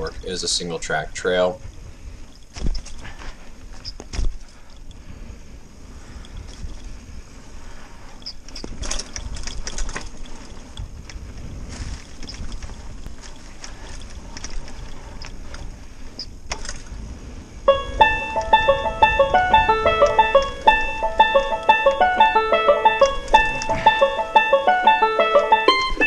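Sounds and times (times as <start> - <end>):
bike clicks and rattles: 0.0 - 5.0, 5.8 - 17.2, 19.5 - 22.3, 22.9 - 24.1
tyres rumbling on dirt trail: 0.0 - 26.0.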